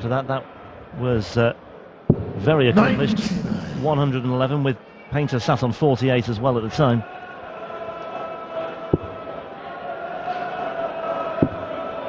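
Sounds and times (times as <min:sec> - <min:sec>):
steady hum: 0:02.1 - 0:04.3
crowd murmur: 0:02.1 - 0:04.4.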